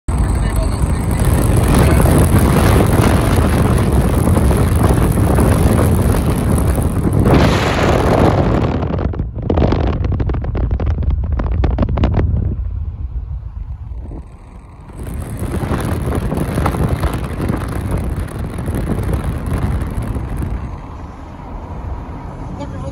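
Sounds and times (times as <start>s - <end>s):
car road and wind noise: 0.1s - 22.9s.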